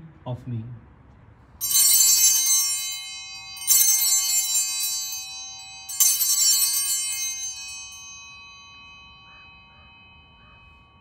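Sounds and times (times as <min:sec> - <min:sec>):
altar bells ringing: 0:01.6 - 0:11.0.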